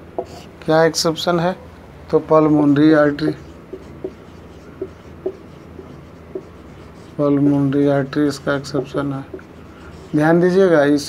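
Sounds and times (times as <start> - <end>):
marker writing on whiteboard: 0.2 - 0.5, 2.4 - 11.0.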